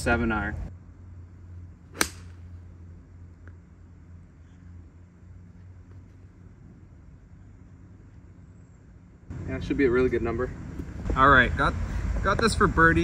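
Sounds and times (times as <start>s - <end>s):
low steady hum: 0.0s - 12.2s
golf club striking ball: 1.9s - 2.6s.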